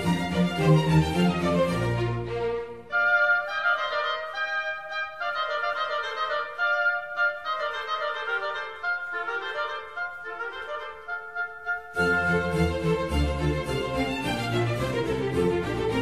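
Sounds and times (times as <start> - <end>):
classical instrumental music: 0.0 - 16.0.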